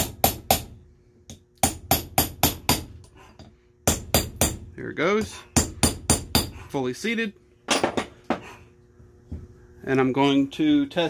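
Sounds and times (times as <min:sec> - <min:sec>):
hammer striking steel punch: 0:00.0 - 0:03.0, 0:03.8 - 0:06.6.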